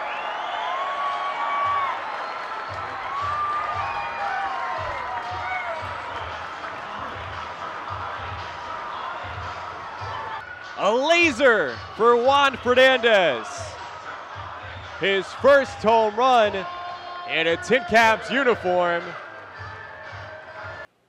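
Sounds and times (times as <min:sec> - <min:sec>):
stadium crowd cheering: 0:00.0 - 0:20.6
ballpark music with low beat: 0:01.1 - 0:20.9.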